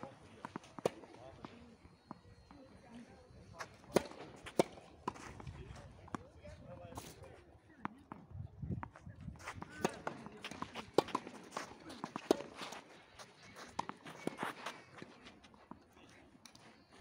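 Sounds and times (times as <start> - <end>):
tennis balls struck by racquets: 0.1 - 6.2, 9.6 - 15.2
shoes scuffing on clay: 3.6 - 5.8, 9.0 - 15.7.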